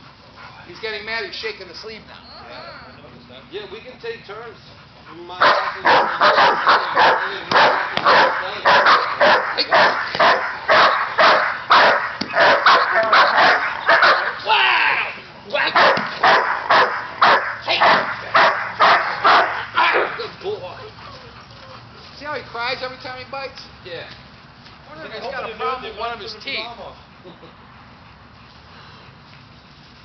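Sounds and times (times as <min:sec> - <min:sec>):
dog barking rapidly: 0:05.4 - 0:14.4, 0:15.6 - 0:20.2.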